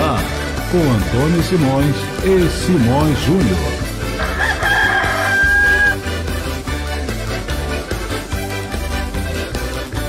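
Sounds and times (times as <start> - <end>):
music bed: 0.0 - 10.0
rooster crowing: 4.1 - 6.0.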